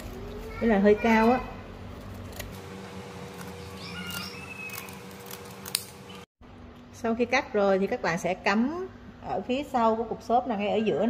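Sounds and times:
scissors snipping leaves: 3.2 - 6.2.

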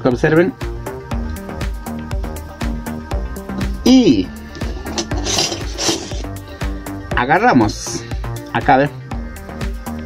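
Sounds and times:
background music with steady beat: 0.0 - 10.0
metal wire scraping on foil: 4.5 - 6.4.

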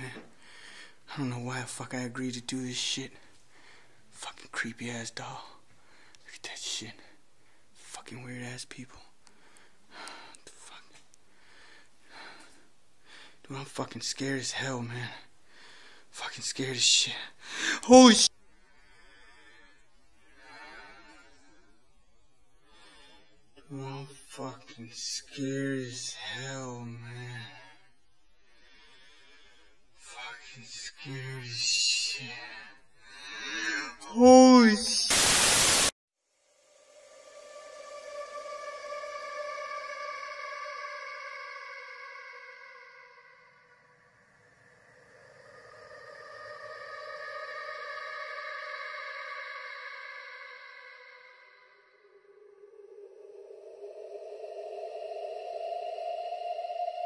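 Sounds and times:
man whispering: 0.0 - 0.4, 1.0 - 3.4, 4.1 - 7.2, 7.8 - 9.2, 10.1 - 11.0, 13.4 - 15.3, 16.1 - 18.3, 23.6 - 27.8, 30.0 - 32.7, 33.6 - 35.1
static hiss: 34.9 - 36.0.

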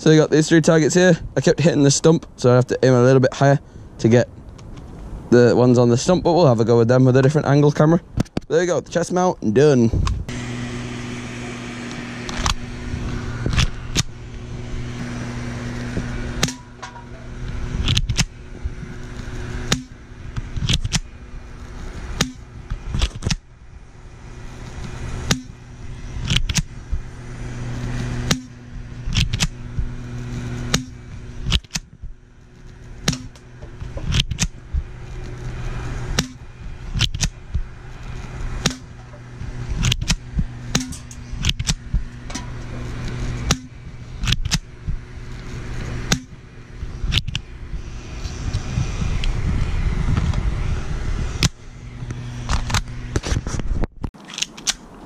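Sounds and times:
low hum: 9.9 - 55.0.

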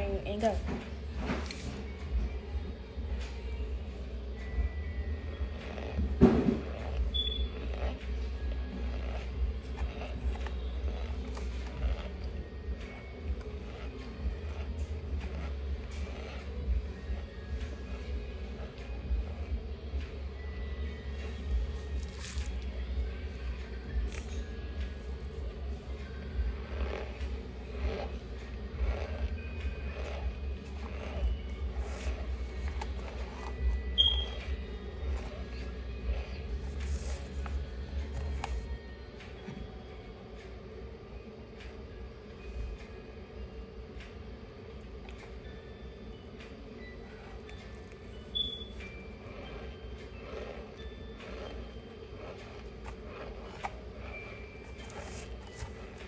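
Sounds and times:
person chewing crunchy powder: 5.2 - 19.9, 20.6 - 38.8, 47.1 - 56.0.

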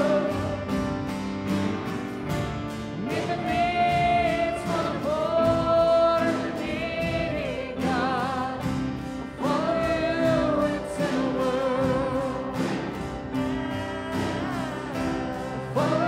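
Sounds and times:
people singing: 0.0 - 1.2, 2.7 - 16.0
worship band playing: 0.0 - 16.0.

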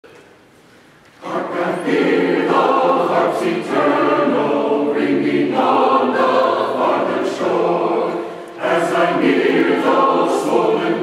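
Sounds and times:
church choir singing: 1.1 - 11.0.

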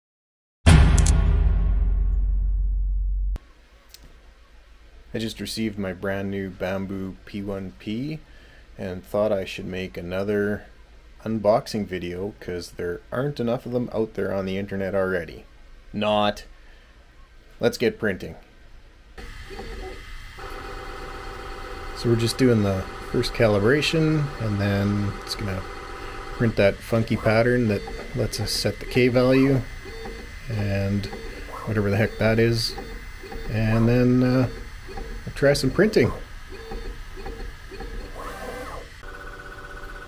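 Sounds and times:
high-pitched motor whine: 19.2 - 40.0
printer machine hum: 19.2 - 40.0.

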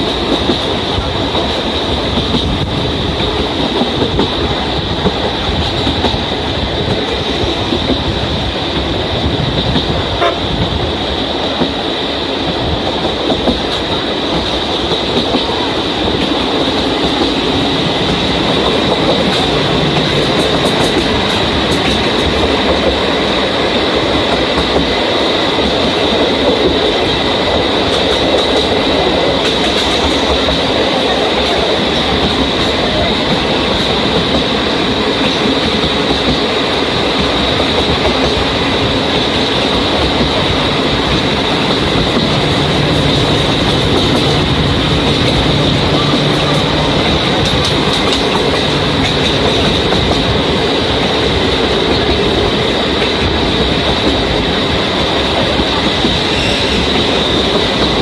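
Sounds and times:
train clickety-clack at speed: 0.0 - 58.0.

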